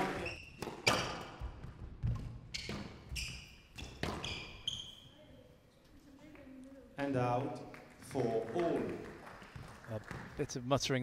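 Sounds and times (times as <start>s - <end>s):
squash ball hitting rackets and walls: 0.0s - 4.7s
shoes squeaking on wooden floor: 0.0s - 5.2s.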